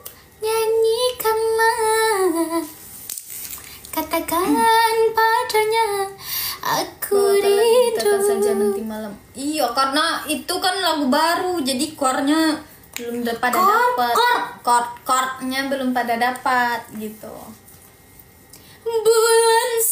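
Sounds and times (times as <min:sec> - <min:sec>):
woman singing a cappella: 0:00.4 - 0:02.8, 0:03.9 - 0:09.2, 0:18.8 - 0:19.9.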